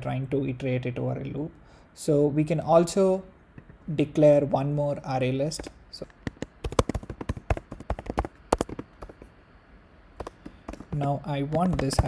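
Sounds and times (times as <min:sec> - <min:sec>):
typing on computer keyboard: 0:05.6 - 0:09.3, 0:10.2 - 0:12.0.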